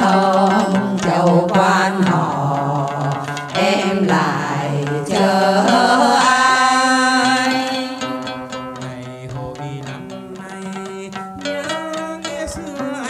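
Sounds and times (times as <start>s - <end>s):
women's choir singing folk song: 0.0s - 10.7s
lute accompaniment: 0.0s - 13.0s.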